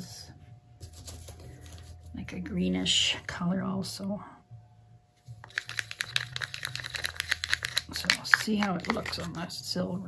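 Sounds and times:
plastic spoon stirring paint in cup: 0:05.4 - 0:09.6.

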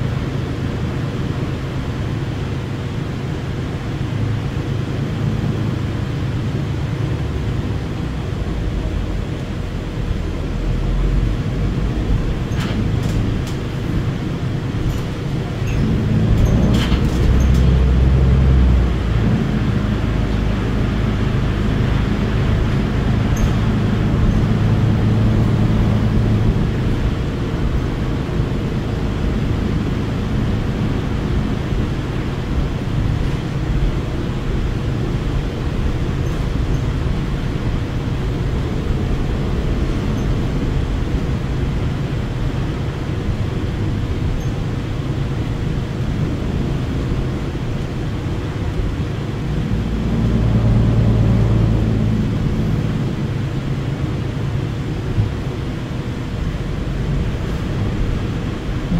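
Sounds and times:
bus drivetrain drone: 0:00.0 - 0:58.9
road rumble: 0:00.0 - 0:58.9.

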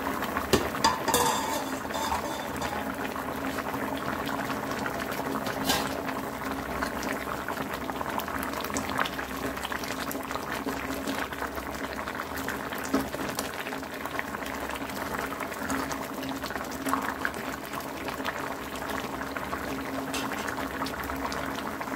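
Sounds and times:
gravy boiling and bubbling: 0:00.0 - 0:21.9.

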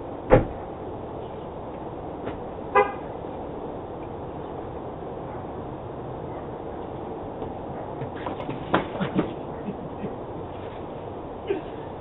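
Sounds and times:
truck horn toot: 0:02.7 - 0:03.1.

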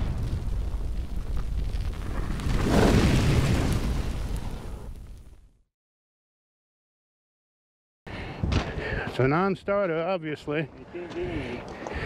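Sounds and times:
explosion boom with low rumble: 0:00.0 - 0:05.4.

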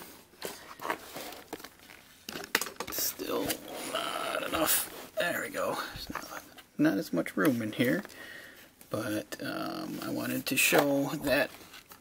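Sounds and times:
book pages rustling and crackling: 0:00.0 - 0:03.9, 0:10.0 - 0:12.0.

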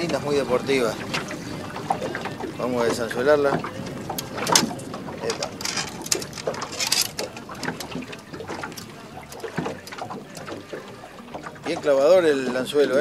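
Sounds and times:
boat and river water noise: 0:00.0 - 0:13.0
hook clicking and rattling: 0:04.2 - 0:08.0.

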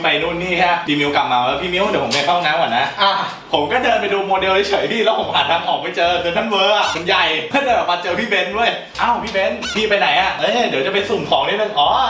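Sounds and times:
short rising squeal: 0:09.6 - 0:09.9.

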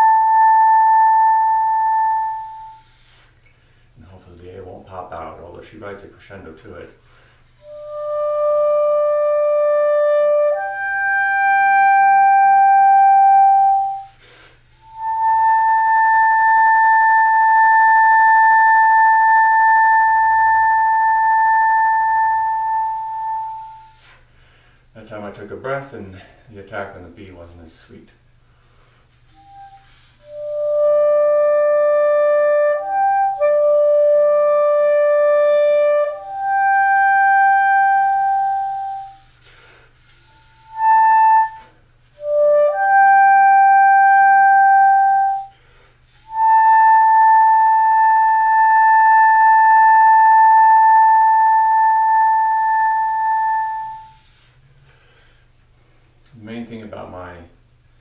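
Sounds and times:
clarinet solo: 0:00.0 - 0:06.8, 0:07.5 - 0:24.3, 0:29.2 - 0:55.4.

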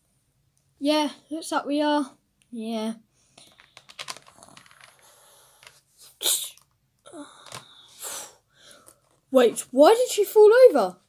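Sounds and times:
plastic toy figures clicking: 0:03.4 - 0:05.0.

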